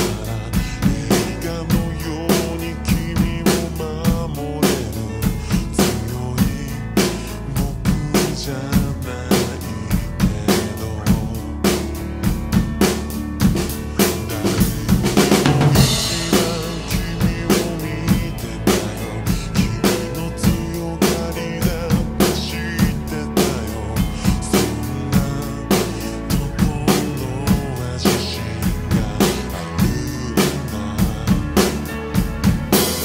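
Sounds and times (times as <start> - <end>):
drum kit beat: 0.0 - 33.0
slowed pop song with singing: 0.0 - 33.0.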